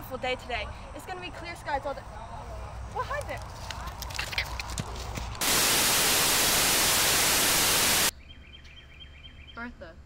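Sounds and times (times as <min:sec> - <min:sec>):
tv static hiss: 0:05.4 - 0:08.1.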